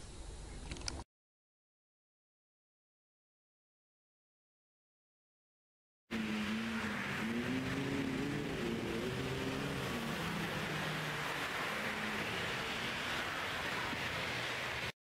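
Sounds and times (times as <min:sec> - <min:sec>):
car driving past: 0:06.1 - 0:14.9
road noise: 0:06.1 - 0:15.0.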